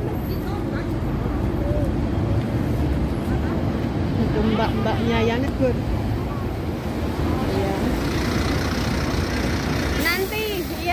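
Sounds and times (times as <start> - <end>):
faint voices of passers-by: 0.0 - 10.9
steady low street rumble: 0.0 - 10.9.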